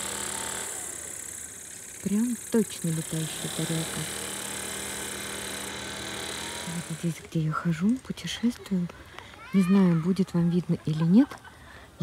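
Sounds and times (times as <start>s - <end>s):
machine hum: 0.0s - 7.5s.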